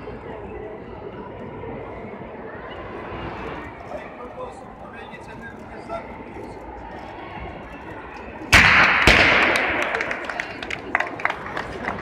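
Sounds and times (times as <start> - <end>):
crowd noise: 0.0 - 12.0
confetti cannon bang: 8.6 - 10.2
applause: 9.2 - 12.0.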